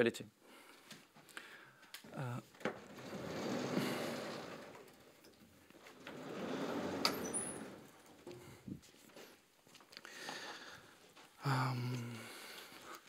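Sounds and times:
blackboard panels sliding: 2.6s - 8.8s.

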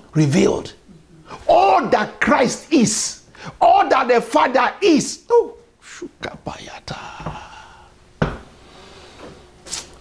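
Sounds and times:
man whispering: 5.8s - 7.9s.

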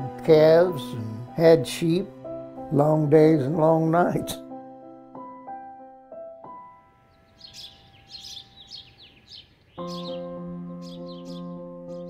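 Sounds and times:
soft keyboard chord music: 0.0s - 12.0s
small birds chirping: 6.9s - 12.0s.

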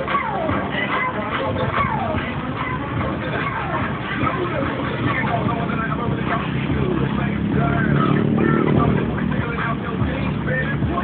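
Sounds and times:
vehicle engine running: 1.8s - 11.0s.

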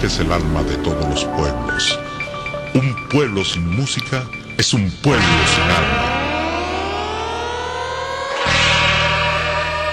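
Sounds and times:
rising siren sound effect: 5.2s - 9.9s.

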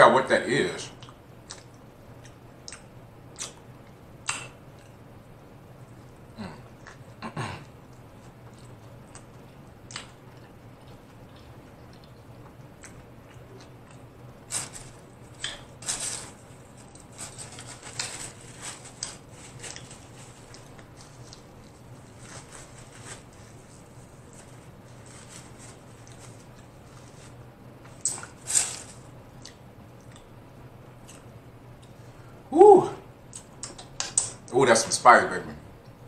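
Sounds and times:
wet chewing mouth smacks: 1.0s - 3.6s.

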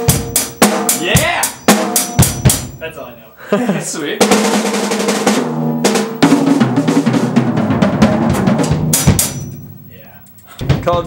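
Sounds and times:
drum kit played fast: 0.0s - 3.1s, 4.0s - 11.0s
cymbal crash: 7.6s - 10.2s.

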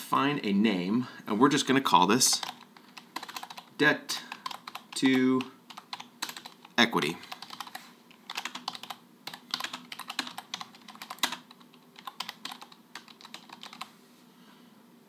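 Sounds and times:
typing on computer keyboard: 2.3s - 3.7s, 4.3s - 13.9s.

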